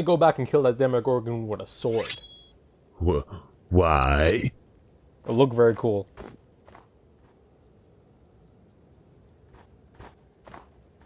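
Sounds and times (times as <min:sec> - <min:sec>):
faint footsteps: 0:06.1 - 0:07.7, 0:09.4 - 0:11.0.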